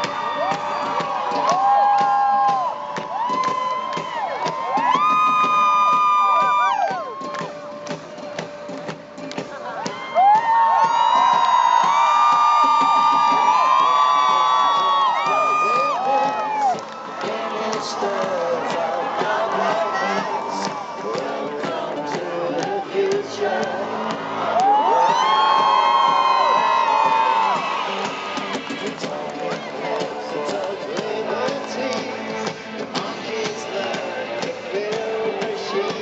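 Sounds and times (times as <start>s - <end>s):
stadium crowd screaming and cheering: 0.0s - 36.0s.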